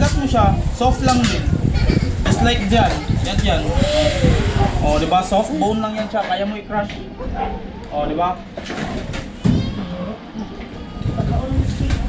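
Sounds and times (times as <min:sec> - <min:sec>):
people talking indistinctly: 0:00.0 - 0:08.6.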